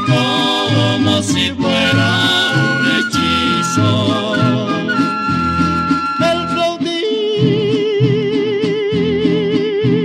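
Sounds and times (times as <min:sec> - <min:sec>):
vocal trio singing: 0:00.0 - 0:05.6.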